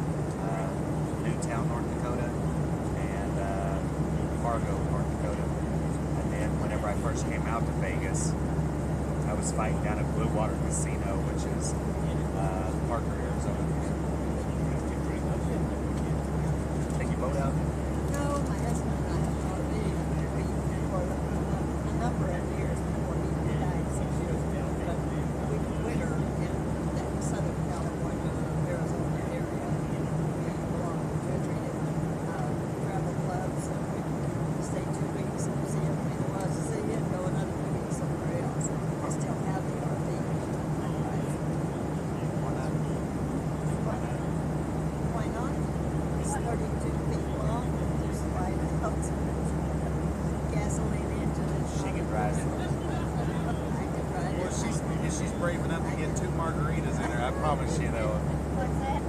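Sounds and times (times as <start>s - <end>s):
airliner cabin engine hum: 0.0s - 59.0s
muffled conversation: 0.0s - 59.0s.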